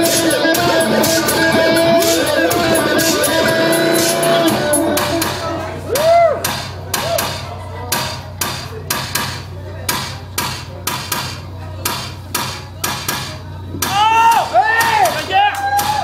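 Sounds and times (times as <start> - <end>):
person singing: 0.0 - 6.0
sharp percussive hits: 6.4 - 16.0.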